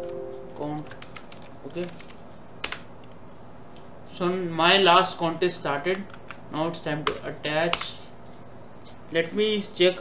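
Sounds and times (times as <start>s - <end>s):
computer keyboard keystroke: 0.0s - 2.9s, 5.9s - 6.4s.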